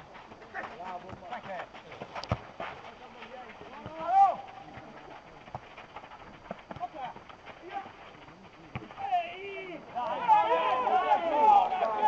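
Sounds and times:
distant people shouting: 3.7 - 5.0, 8.8 - 12.0.

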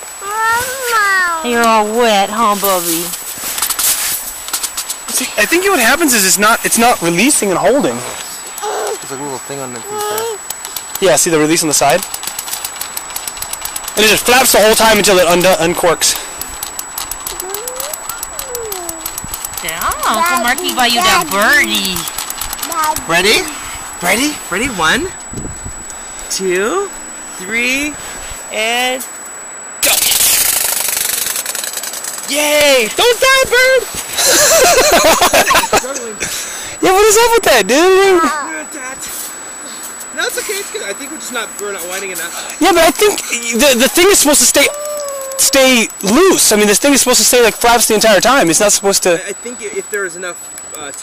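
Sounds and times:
camera rustling against snow and clothing: 0.4 - 10.9, 39.0 - 42.5
toy bird wings rattling: 10.0 - 23.4, 30.0 - 32.4, 43.7 - 47.4
rapid mechanical clicking: 10.4 - 24.2, 29.8 - 33.2, 41.2 - 49.1, 49.7 - 51.0
faint voice sliding in pitch: 17.4 - 19.1, 44.7 - 45.6.

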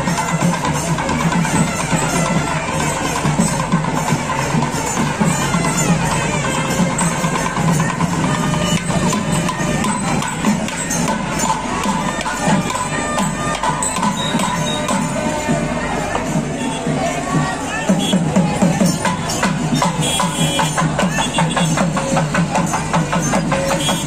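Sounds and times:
crowd: 0.0 - 24.0
jingling percussion: 0.0 - 24.0
loud music with drums: 0.0 - 24.0.

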